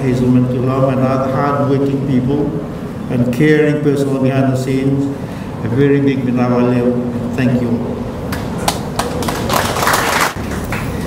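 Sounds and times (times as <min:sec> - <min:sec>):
audience handclaps: 0:08.3 - 0:11.0.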